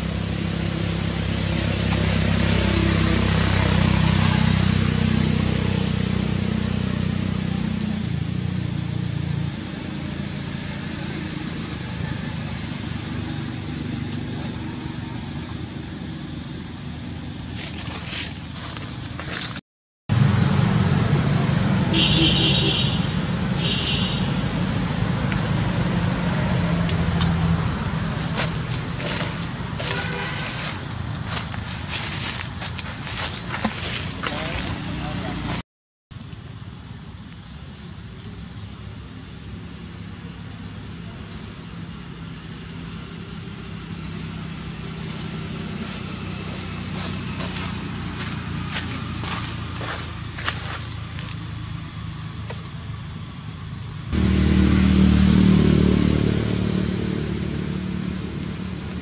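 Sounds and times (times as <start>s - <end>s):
vehicle engine running: 0.0s - 35.6s, 36.2s - 59.0s
dry leaves crackling: 17.5s - 19.6s, 26.3s - 35.6s, 44.1s - 51.8s.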